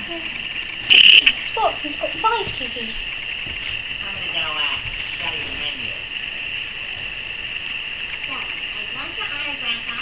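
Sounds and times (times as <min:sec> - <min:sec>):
steady high-pitched hiss: 0:00.0 - 0:10.0.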